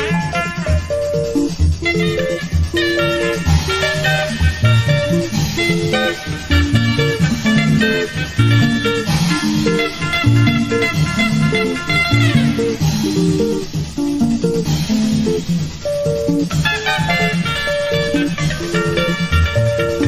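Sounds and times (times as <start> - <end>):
bouncing bass guitar: 0.0 - 20.0.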